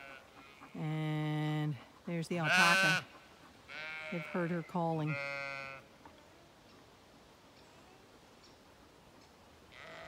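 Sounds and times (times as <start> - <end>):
sheep bleating: 2.4 - 5.9, 9.7 - 10.0.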